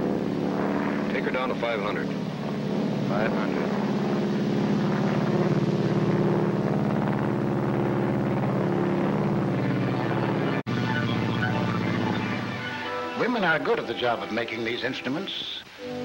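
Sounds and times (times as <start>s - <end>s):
piston engines droning: 0.0s - 13.3s.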